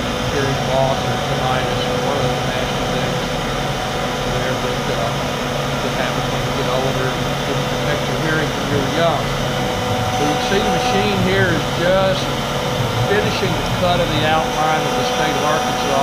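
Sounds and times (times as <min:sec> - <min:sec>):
dust collector air rush: 0:00.0 - 0:16.0
router spindle whine: 0:00.0 - 0:16.0.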